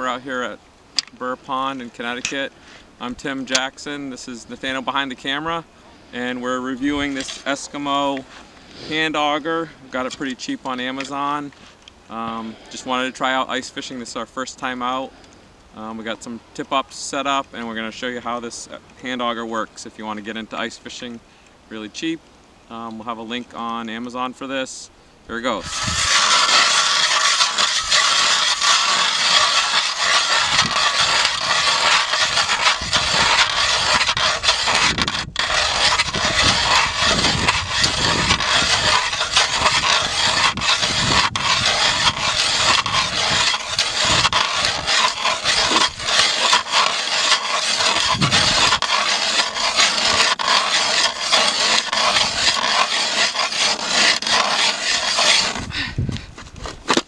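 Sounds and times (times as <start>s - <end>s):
hand ice auger grinding ice: 7.0s - 8.0s, 25.6s - 55.9s.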